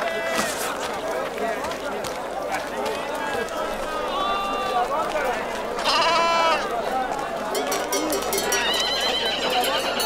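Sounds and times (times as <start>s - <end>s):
crowd of overlapping voices: 0.0s - 10.0s
livestock calling: 5.8s - 6.7s
high drawn-out call: 8.3s - 10.0s.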